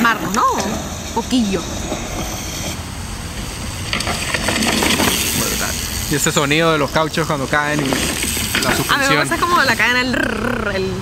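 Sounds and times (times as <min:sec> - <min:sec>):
bike tyres rolling on dirt: 0:00.0 - 0:10.1
bike clicks and rattles: 0:01.8 - 0:10.0.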